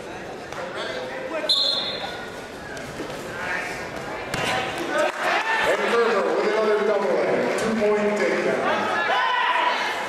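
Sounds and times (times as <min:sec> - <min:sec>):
referee's whistle blast: 0:01.5 - 0:02.1
spectators shouting: 0:08.7 - 0:10.0.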